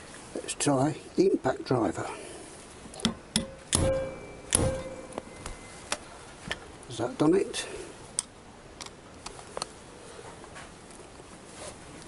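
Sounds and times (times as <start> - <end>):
hammer striking metal driver: 3.0 - 5.4.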